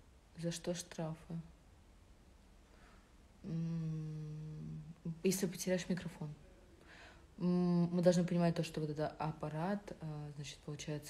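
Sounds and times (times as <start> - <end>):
woman humming: 3.4 - 5.2.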